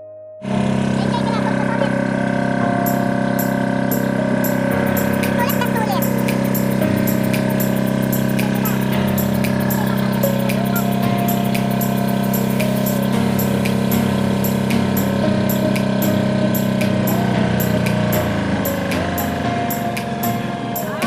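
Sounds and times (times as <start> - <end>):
boat engine running: 0.4 - 21.0.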